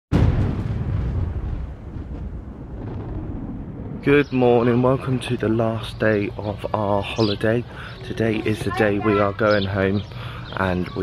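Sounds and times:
deep boom low rumble: 0.1s - 6.4s.

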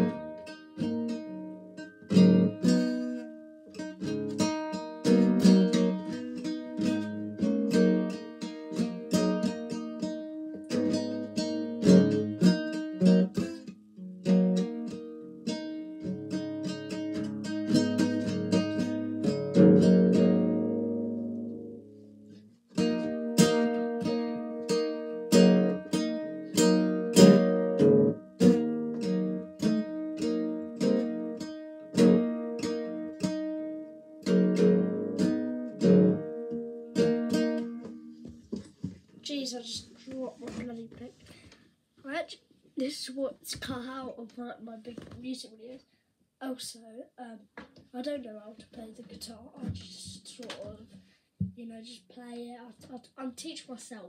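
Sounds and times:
acoustic guitar strumming chords: 0.0s - 40.9s.

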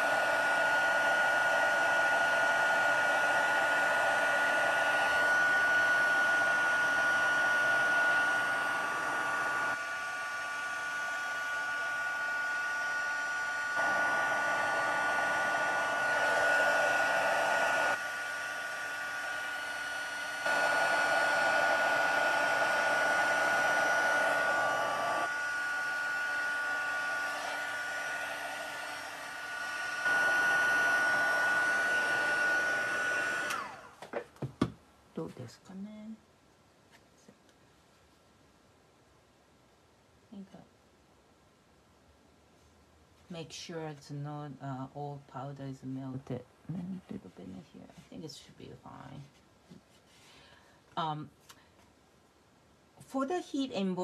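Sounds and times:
heat tool fan whine: 0.0s - 34.7s.

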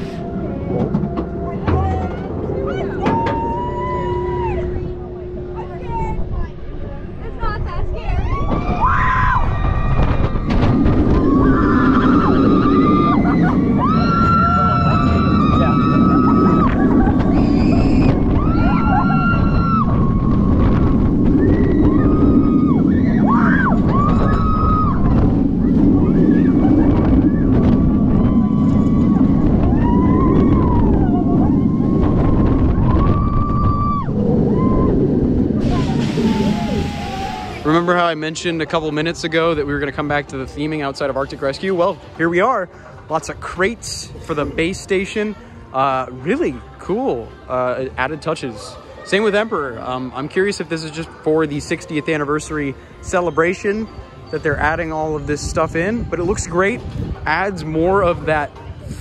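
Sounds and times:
wind rushing: 0.0s - 38.2s, 54.4s - 59.0s
roller coaster train rumble: 0.0s - 59.0s.

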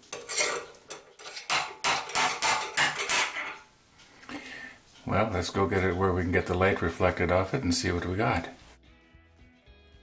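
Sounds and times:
metallic clinks and knocks: 0.0s - 3.7s.

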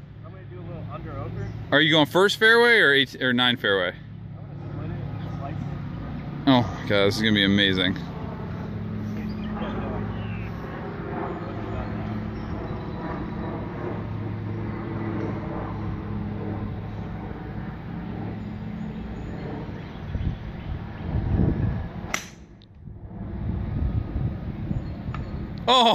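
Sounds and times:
steady low hum: 0.0s - 25.9s
golf club striking ball: 22.1s - 22.5s.

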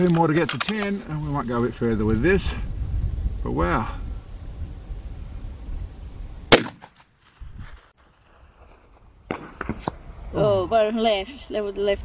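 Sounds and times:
rifle shot: 6.5s - 8.4s, 9.3s - 10.0s.

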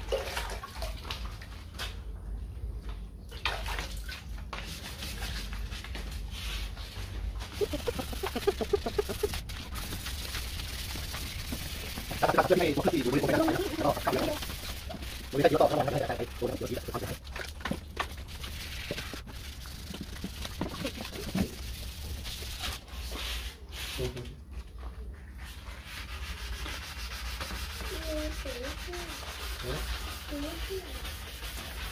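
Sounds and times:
wet sandpaper rubbing plastic: 7.4s - 24.2s, 25.4s - 31.9s
bird calling rapidly: 7.6s - 9.4s.

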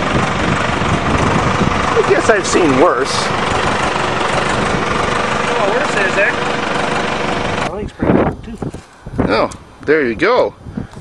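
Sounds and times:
car engine idling: 0.0s - 7.9s.

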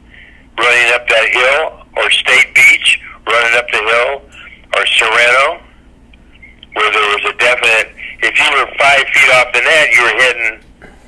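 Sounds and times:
man talking: 0.6s - 5.7s, 6.6s - 10.6s.

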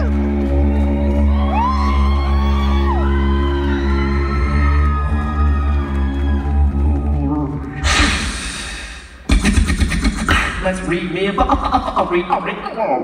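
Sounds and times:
beatboxer vocal bass drone: 6.7s - 13.0s.

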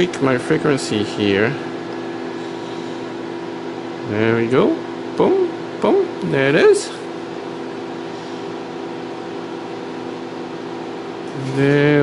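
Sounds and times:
cooling fans humming: 0.0s - 12.0s.

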